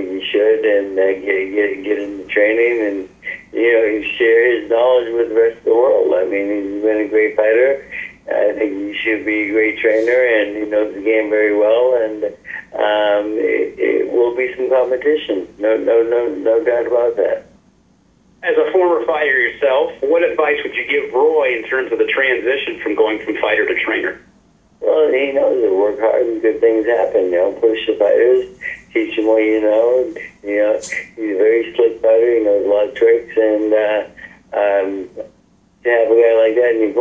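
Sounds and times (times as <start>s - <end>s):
person talking over phone line: 0.0s - 17.5s, 18.4s - 37.0s.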